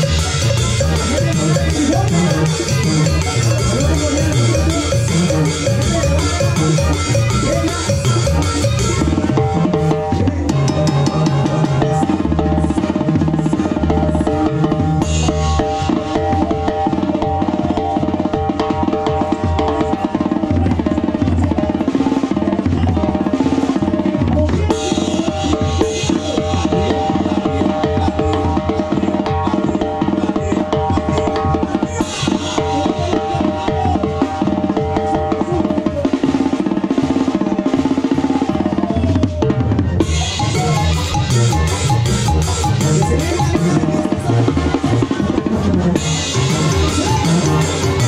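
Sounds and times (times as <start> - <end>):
band playing: 0.0 - 48.0.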